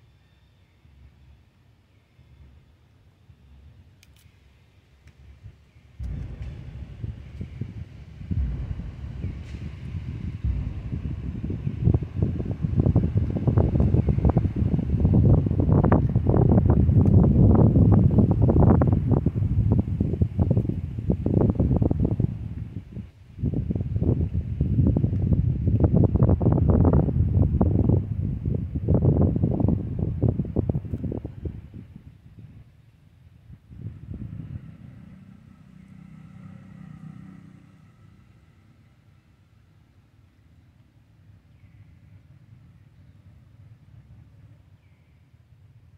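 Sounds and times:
wind buffeting microphone: 5.2 - 38.2.

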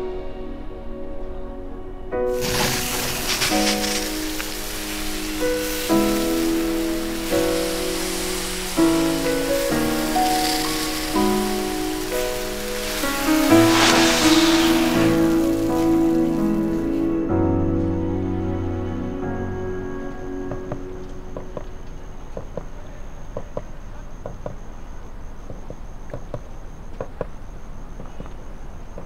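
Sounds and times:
slow background music: 0.0 - 22.6
fountain firework hissing: 2.3 - 17.6.

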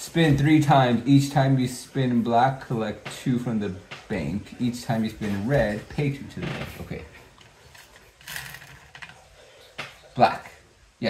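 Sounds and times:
spinner wheel clicking: 7.8 - 9.2.

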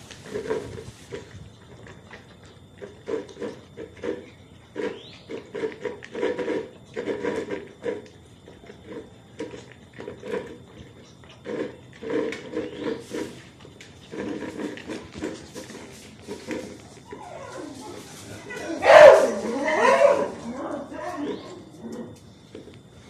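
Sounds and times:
puppies chewing kibble: 0.0 - 23.0
puppy whining: 16.7 - 22.2.

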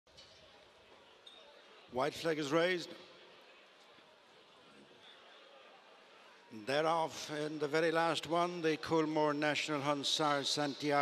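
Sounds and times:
man commentating a race: 1.9 - 3.1, 6.4 - 11.0.

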